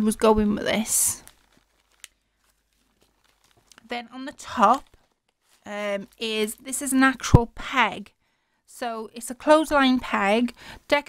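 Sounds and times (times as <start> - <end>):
paper envelope rustling: 0.6 - 6.7.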